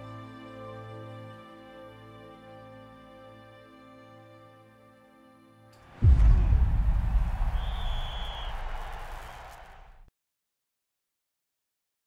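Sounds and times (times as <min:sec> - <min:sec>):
deep rumbling boom: 0:05.9 - 0:10.0.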